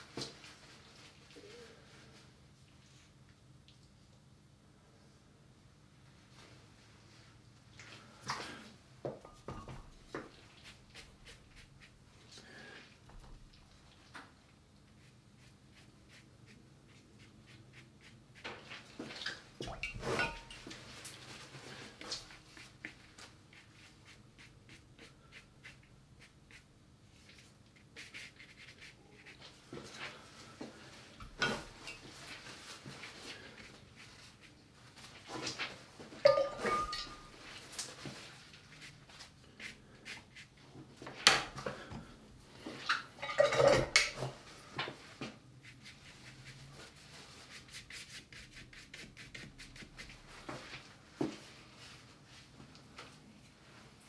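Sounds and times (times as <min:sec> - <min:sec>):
brushes stroking on paper: 0:10.3 - 0:12.4, 0:14.9 - 0:18.9, 0:20.7 - 0:35.7, 0:37.2 - 0:40.7, 0:45.0 - 0:50.9
paint pots knocking and clinking: 0:19.6 - 0:20.8, 0:36.2 - 0:37.4, 0:42.9 - 0:44.4.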